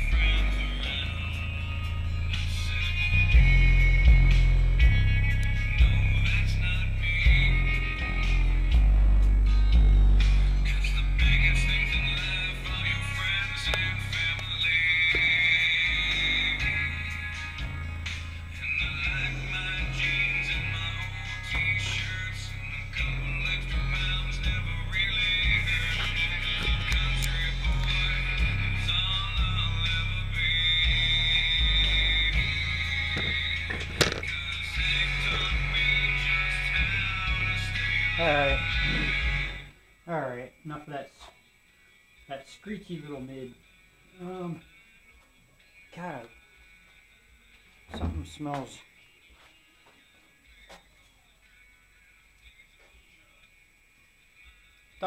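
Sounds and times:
rock music with heavy bass: 0:00.0 - 0:39.7
screechy midrange speaker: 0:00.0 - 0:53.6.

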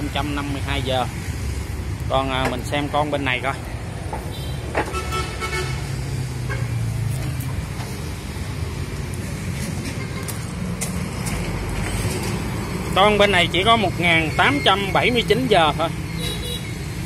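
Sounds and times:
road traffic rumble: 0:00.0 - 0:17.0.

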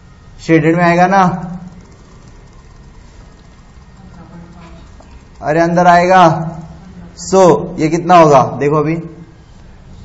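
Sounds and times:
background hiss and hum: 0:00.0 - 0:10.0.

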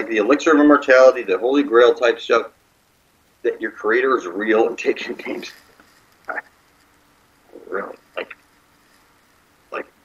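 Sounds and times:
person murmuring: 0:07.5 - 0:08.4, 0:09.7 - 0:10.0.

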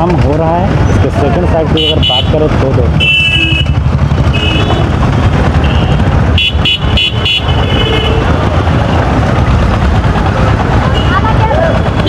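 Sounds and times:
street traffic rumble: 0:00.0 - 0:12.0
vehicle horn honking: 0:01.8 - 0:02.4, 0:03.0 - 0:05.0, 0:05.6 - 0:08.4.

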